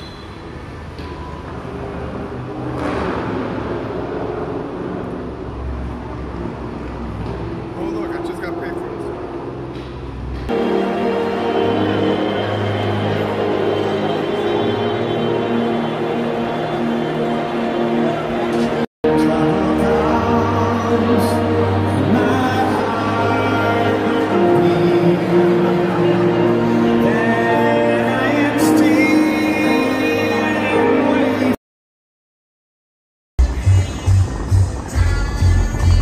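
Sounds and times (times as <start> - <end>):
traffic rumble: 0.0 - 18.9
crowd chatter: 1.5 - 31.6, 33.4 - 36.0
music playing: 10.4 - 31.6, 33.4 - 36.0.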